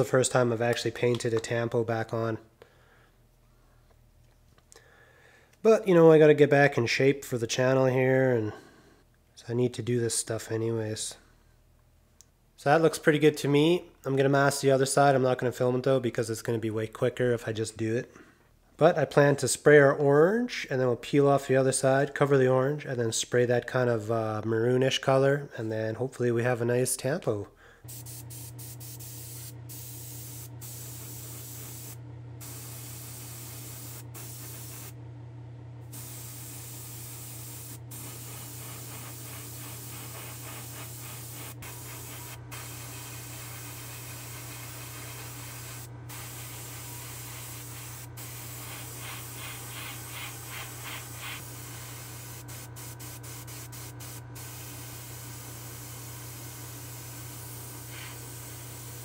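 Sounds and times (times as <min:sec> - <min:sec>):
steady low hum: 0:27.6 - 0:59.0
paint sprayer hissing: 0:27.9 - 0:35.0, 0:35.8 - 0:59.0.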